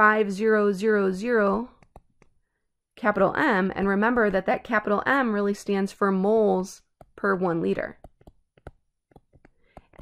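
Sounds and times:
stylus tapping on tablet screen: 1.3 - 2.4, 3.1 - 4.6, 6.8 - 10.0.

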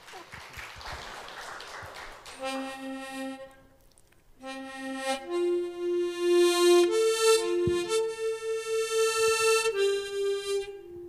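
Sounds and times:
congregation applauding: 0.0 - 2.7.

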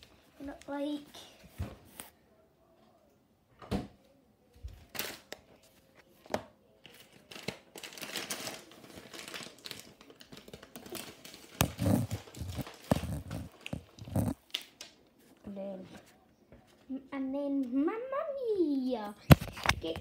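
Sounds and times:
crinkling and rustling: 6.8 - 16.2.

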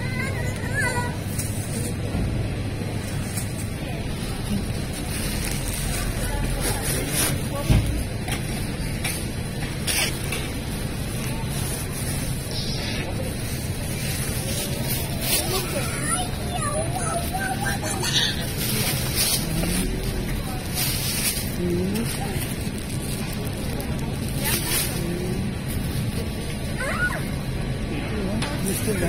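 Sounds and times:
faint in-store music: 0.0 - 29.0
hubbub of indistinct voices: 0.0 - 29.0.

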